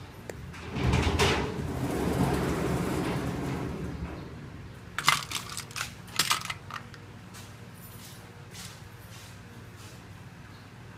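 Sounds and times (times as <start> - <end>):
plastic items clicking and rattling: 5.0 - 7.0.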